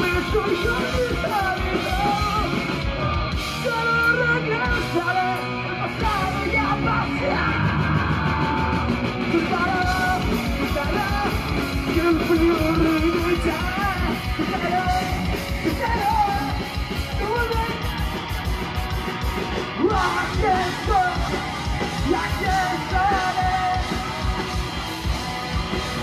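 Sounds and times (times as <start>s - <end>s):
singer yelling vocals: 0.0s - 2.6s, 3.5s - 17.9s, 19.7s - 24.7s
punk rock band playing: 0.0s - 26.0s.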